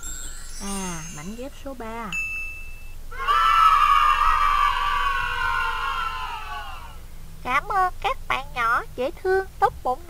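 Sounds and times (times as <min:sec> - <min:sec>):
short ding: 0:02.2 - 0:03.0
children cheering: 0:03.1 - 0:07.0.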